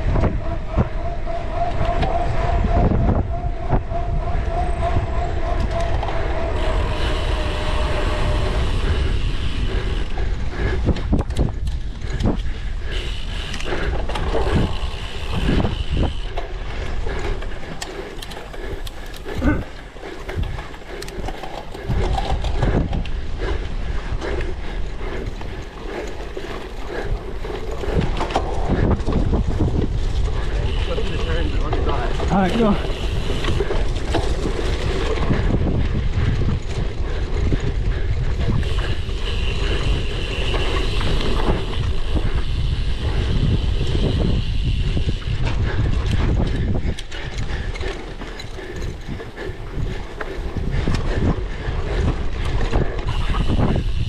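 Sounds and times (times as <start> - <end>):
wind buffeting microphone: 0.0 - 54.0
bike rattling and knocking: 5.3 - 54.0.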